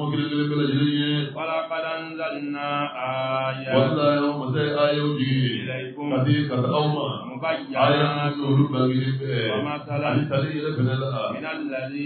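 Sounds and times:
man chanting through microphone: 0.0 - 12.0.

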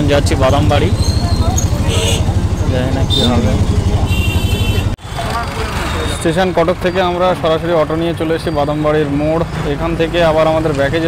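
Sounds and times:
engines rumbling: 0.0 - 11.0.

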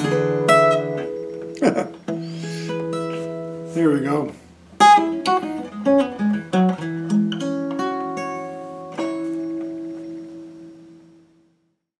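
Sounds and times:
fingerstyle acoustic guitar: 0.0 - 11.4.

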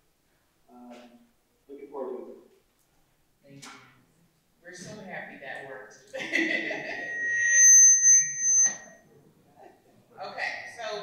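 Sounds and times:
microphone feedback squeal: 6.4 - 9.1.

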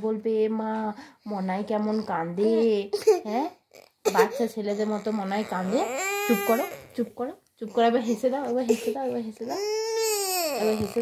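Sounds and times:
girl crying: 8.7 - 11.0.

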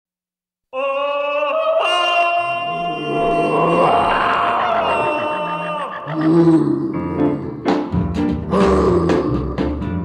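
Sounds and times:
vocal group singing harmony: 2.2 - 7.4.

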